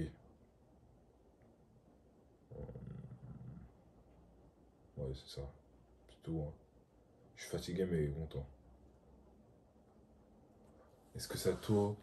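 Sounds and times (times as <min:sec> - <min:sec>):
man grunting with mouth closed: 0:02.5 - 0:03.7.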